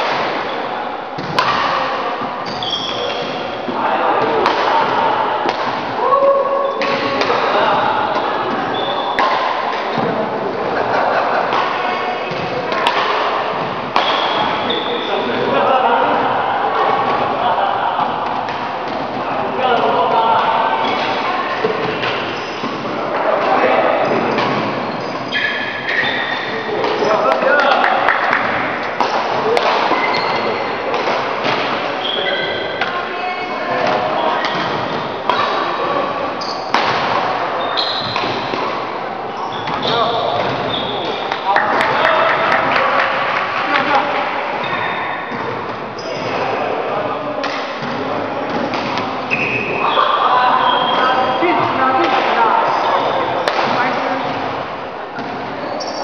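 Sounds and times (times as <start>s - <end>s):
people talking: 0.0s - 56.0s
rackets striking shuttlecock: 1.2s - 3.5s, 4.2s - 6.0s, 6.8s - 10.2s, 11.4s - 15.5s, 19.8s - 31.9s, 33.8s - 35.7s, 36.4s - 37.4s, 38.0s - 39.0s, 47.4s - 50.2s, 50.9s - 54.6s
shoes squeaking on court: 2.2s - 3.7s, 8.0s - 9.3s, 13.5s - 15.4s, 20.4s - 23.0s, 24.0s - 27.3s, 29.8s - 30.8s, 31.4s - 36.8s, 37.5s - 42.5s, 44.6s - 46.6s, 47.8s - 51.8s, 52.6s - 54.6s, 55.2s - 56.0s.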